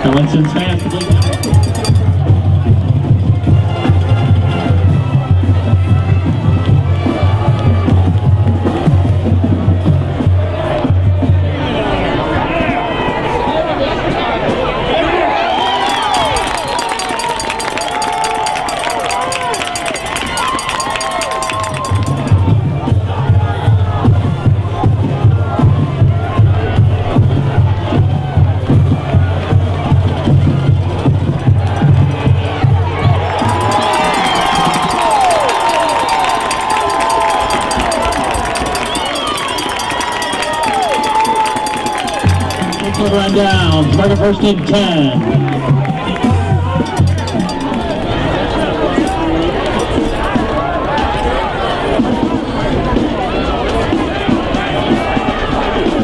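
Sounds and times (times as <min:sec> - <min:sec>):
crowd cheering and shouting: 0:00.0 - 0:56.0.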